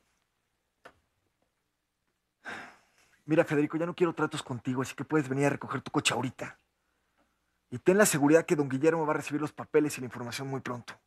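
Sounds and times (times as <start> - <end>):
man sighing: 2.4 - 2.9
man speaking into telephone: 3.3 - 6.6, 7.7 - 11.0.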